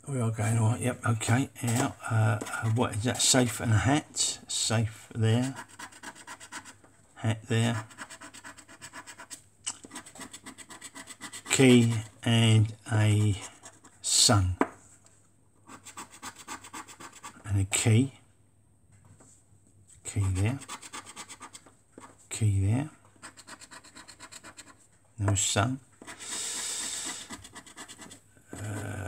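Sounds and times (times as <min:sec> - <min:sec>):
scratchcard being scraped: 0:05.3 - 0:06.8, 0:07.6 - 0:12.2, 0:20.1 - 0:22.1, 0:23.2 - 0:24.8, 0:26.0 - 0:29.0.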